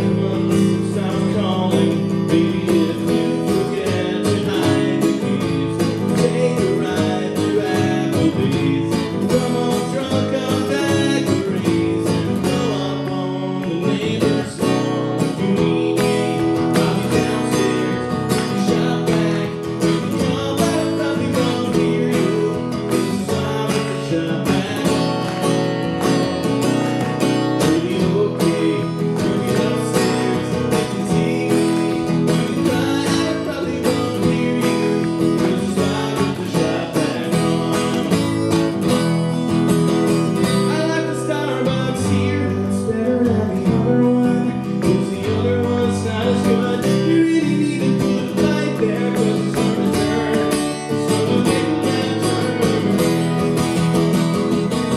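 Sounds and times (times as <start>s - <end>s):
man singing: 0.0s - 53.7s
acoustic guitar strumming: 0.0s - 54.9s.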